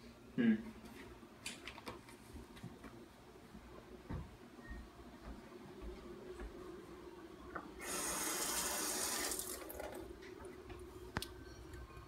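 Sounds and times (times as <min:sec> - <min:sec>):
tap running water into sink: 0:07.8 - 0:10.0.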